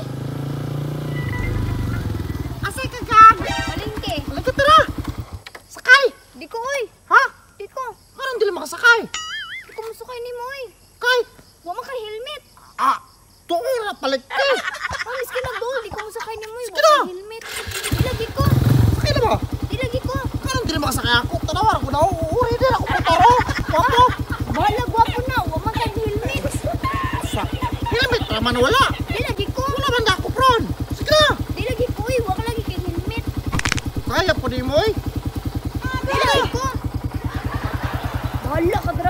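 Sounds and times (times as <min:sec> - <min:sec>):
motorcycle engine approaching: 0:00.0 - 0:05.7, 0:17.4 - 0:39.0.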